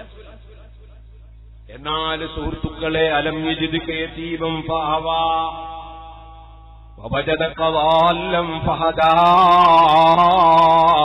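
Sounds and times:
man chanting: 1.7s - 11.0s.

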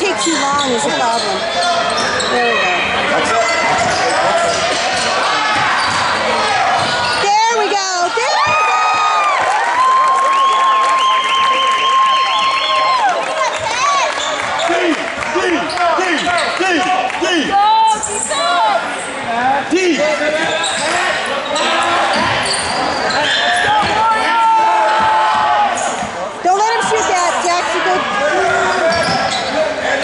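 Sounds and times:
crowd voices in gym: 0.0s - 30.0s
sneaker squeaks on hardwood: 3.4s - 6.2s, 20.4s - 24.0s, 28.7s - 29.6s.

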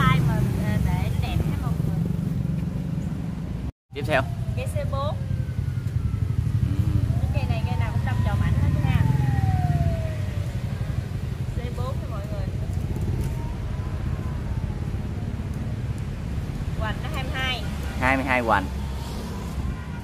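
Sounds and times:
vehicle engine passing by: 5.2s - 20.0s.

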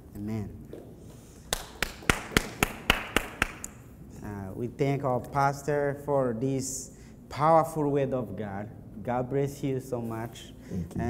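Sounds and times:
hands clapping: 1.4s - 3.8s.

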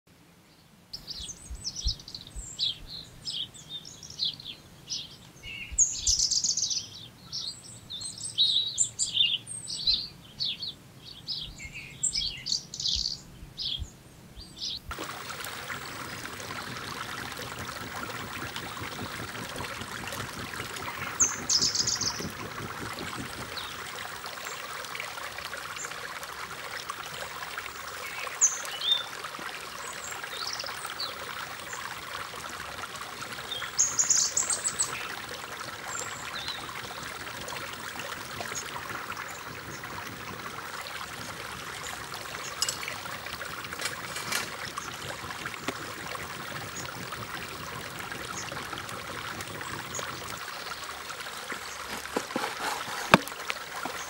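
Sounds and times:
birds chirping: 14.4s - 54.0s
stream water flowing: 14.9s - 54.0s.

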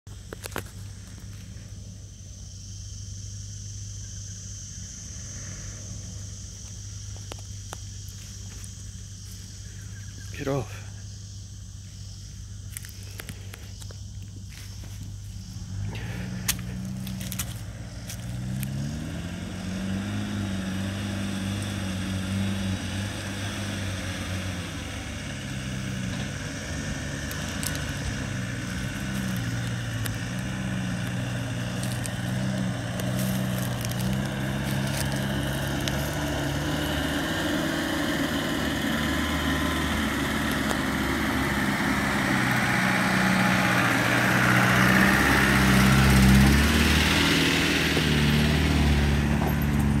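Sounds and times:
vehicle engine at low revs: 0.0s - 50.0s.

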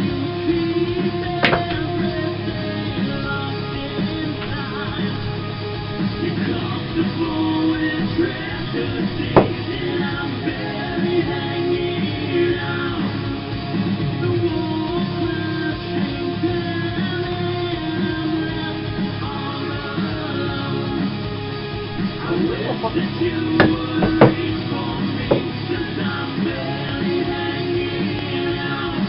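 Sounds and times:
rock music with electric guitar: 0.0s - 29.0s
pool ball clack: 1.4s - 2.0s, 9.0s - 10.1s, 23.6s - 24.6s, 25.2s - 25.6s.

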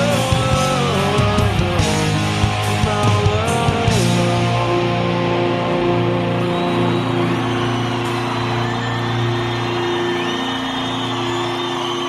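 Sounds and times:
audience cheering and whistling: 0.0s - 12.0s
rock band chord ringing: 0.0s - 12.0s.

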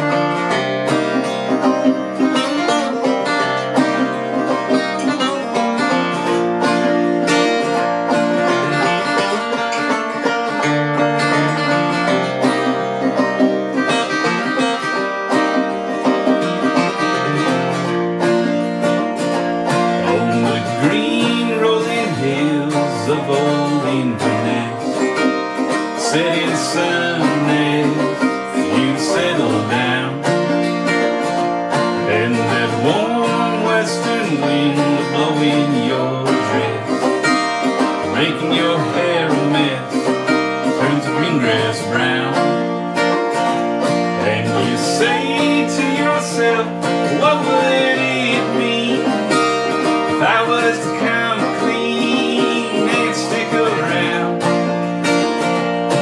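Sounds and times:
acoustic guitar: 0.0s - 56.0s
banjo playing: 0.0s - 56.0s.

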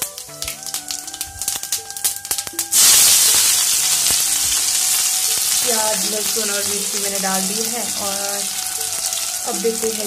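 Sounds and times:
loud sizzle: 0.0s - 10.0s
seeds crackling in hot oil: 0.0s - 10.0s.

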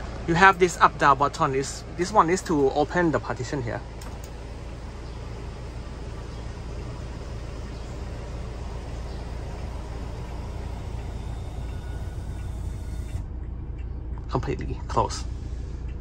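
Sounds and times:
electric motor running: 4.2s - 13.3s.

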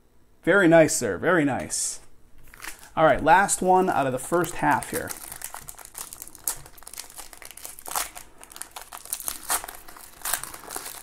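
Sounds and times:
foil wrapper crinkling: 2.4s - 11.0s.

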